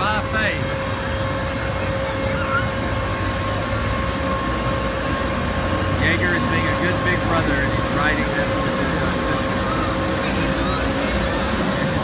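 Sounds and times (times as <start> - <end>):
ride machinery hum and whine: 0.0 - 12.0.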